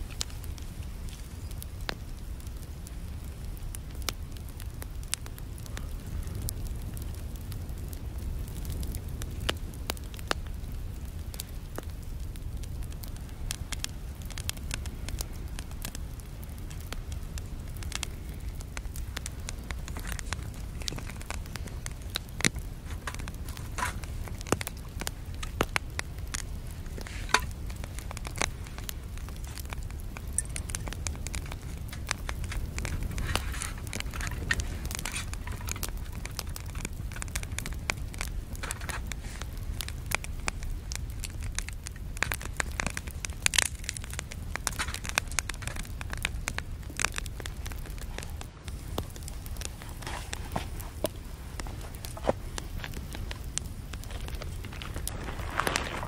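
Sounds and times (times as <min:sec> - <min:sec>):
twigs crackling and popping: 0:00.0 - 0:56.0.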